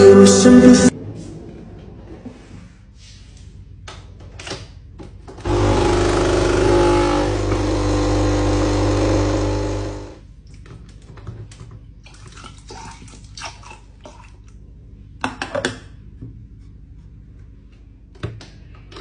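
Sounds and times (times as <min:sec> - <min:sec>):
coffee machine pump buzzing: 0:05.4 - 0:10.2.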